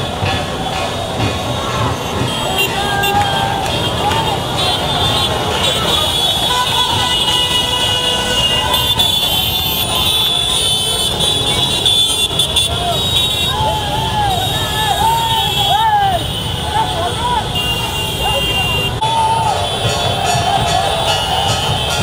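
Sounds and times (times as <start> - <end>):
motorcycle and scooter engines: 0.0 - 22.0
people shouting and cheering: 0.0 - 22.0
vehicle horns: 0.0 - 22.0.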